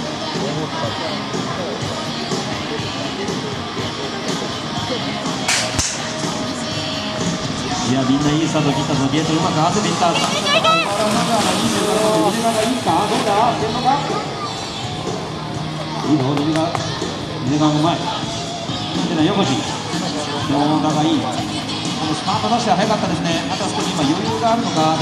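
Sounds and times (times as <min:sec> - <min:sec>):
music: 0:00.0 - 0:25.0.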